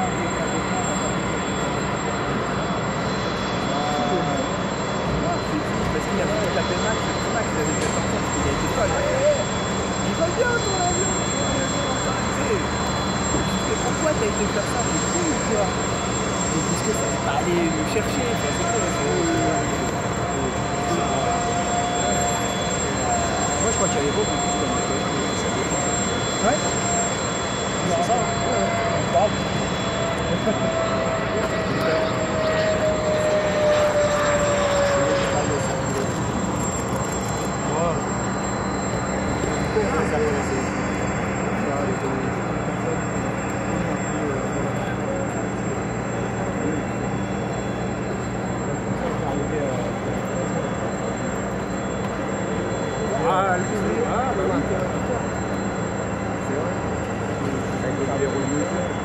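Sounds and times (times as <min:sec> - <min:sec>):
people talking: 0:00.0 - 0:01.9, 0:03.6 - 0:27.1, 0:27.7 - 0:36.3, 0:37.6 - 0:38.1, 0:39.1 - 0:47.6, 0:48.6 - 0:51.4, 0:52.2 - 0:59.0
jet engine whine: 0:00.0 - 0:59.0.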